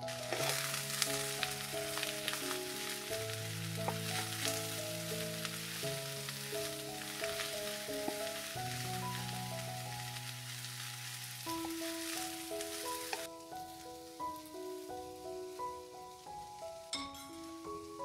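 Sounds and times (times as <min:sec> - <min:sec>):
mushrooms sizzling in a pan: 0:00.0 - 0:18.0
soft background music: 0:00.0 - 0:18.0.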